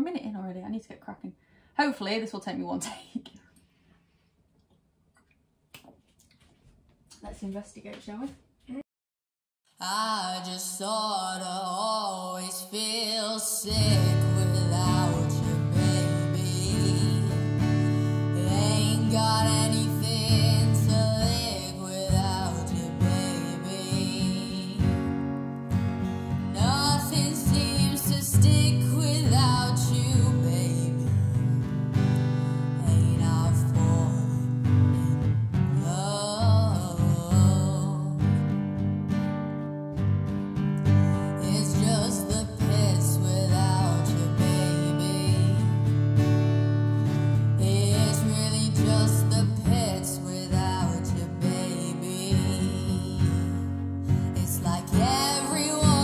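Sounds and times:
woman singing a slow ballad: 9.8s - 25.3s, 26.2s - 38.6s, 41.2s - 46.0s, 47.2s - 56.0s
strummed acoustic guitar: 11.4s - 56.0s.

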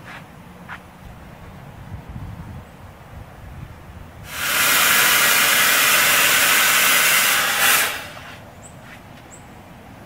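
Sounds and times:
smoke machine hissing: 4.2s - 8.5s.

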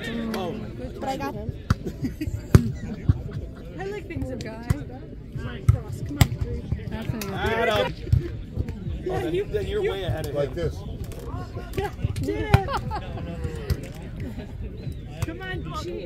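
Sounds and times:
chatter of people: 0.0s - 16.0s.

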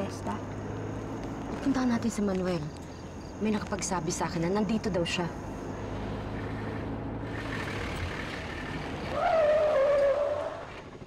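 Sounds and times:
motor vehicle running: 0.0s - 11.0s.

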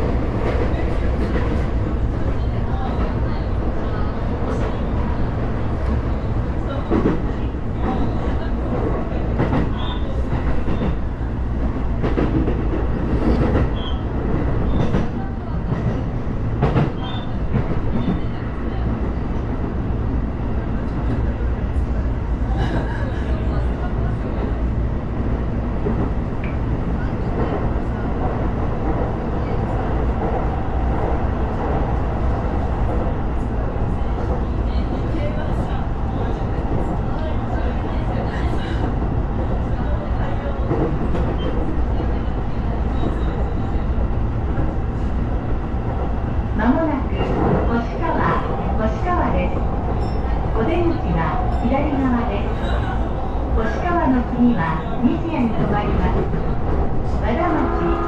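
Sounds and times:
train wheels rumbling on rail: 0.0s - 58.0s.

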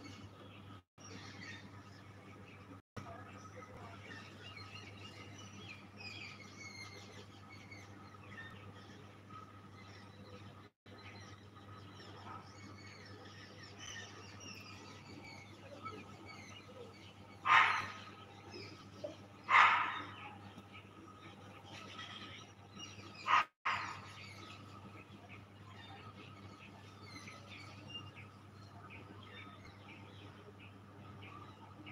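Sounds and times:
small birds chirping: 0.0s - 31.9s
harsh animal calls: 17.4s - 18.2s.

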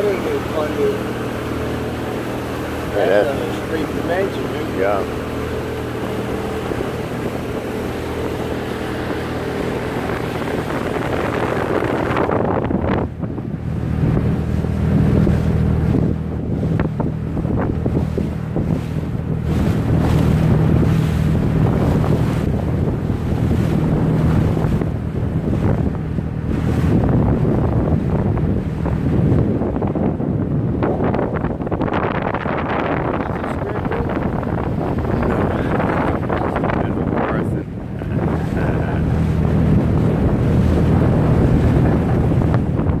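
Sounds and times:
motorboat engine droning: 0.0s - 43.0s
water rushing past hull: 0.0s - 43.0s
wind buffeting microphone: 0.0s - 43.0s.

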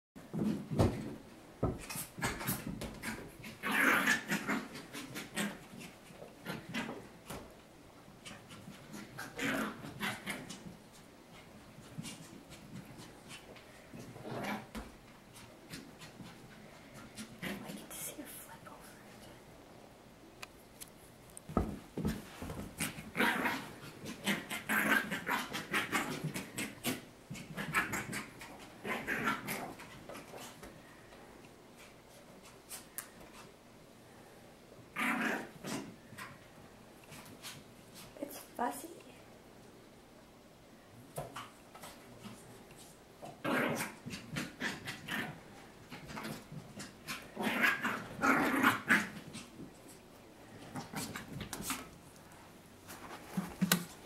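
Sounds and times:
puppy growling: 2.2s - 7.0s, 8.2s - 10.7s, 22.8s - 30.5s, 34.9s - 36.3s, 43.2s - 49.8s.

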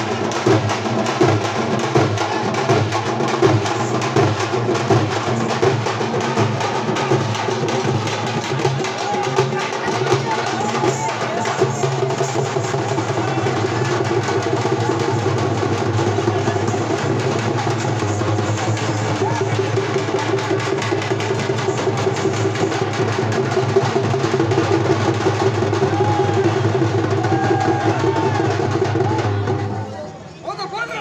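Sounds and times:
large drums beating fast: 0.0s - 29.9s.

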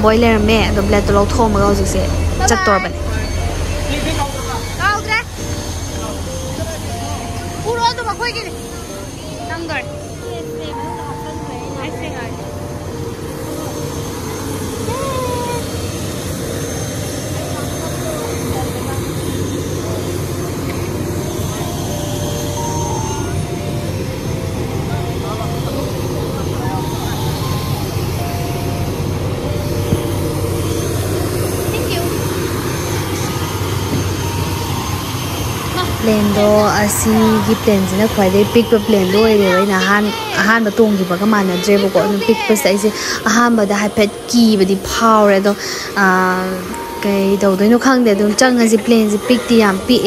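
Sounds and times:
aircraft engines running: 0.0s - 50.0s
people's voices: 0.0s - 50.0s.

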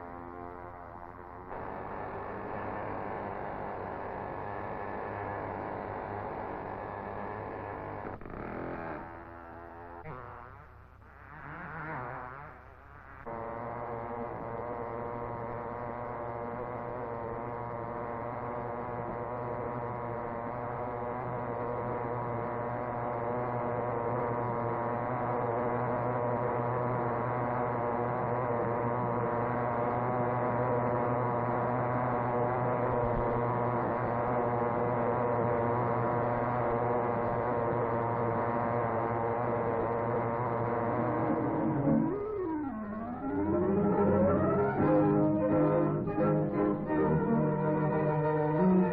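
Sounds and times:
model car engine buzzing: 0.0s - 48.9s.

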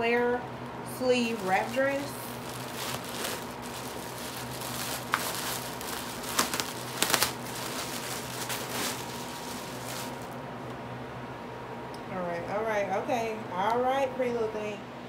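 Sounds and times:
faint steady hum: 0.0s - 15.0s
plastic bag crinkling: 1.2s - 10.4s.

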